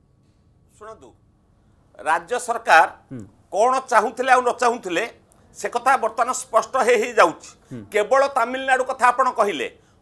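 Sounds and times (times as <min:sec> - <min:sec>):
short spoken syllable: 0:03.1 - 0:03.3, 0:07.7 - 0:08.0.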